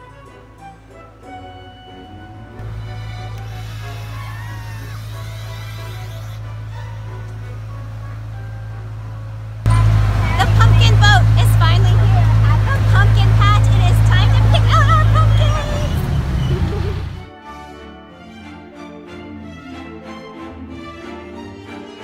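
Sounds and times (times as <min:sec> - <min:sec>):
boat motor humming: 0:00.0 - 0:17.3
people's voices: 0:09.7 - 0:17.2.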